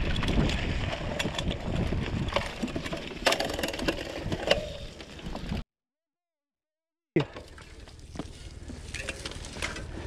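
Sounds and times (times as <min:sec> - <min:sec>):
bike rattling and knocking: 0:00.0 - 0:05.6
bike tyres rumbling on dirt: 0:00.0 - 0:05.6, 0:07.7 - 0:10.0.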